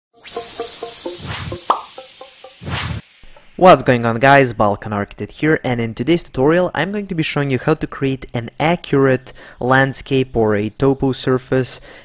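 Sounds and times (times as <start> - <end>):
quick plucked popping notes: 0.1 - 3.6
whoosh: 0.2 - 3.4.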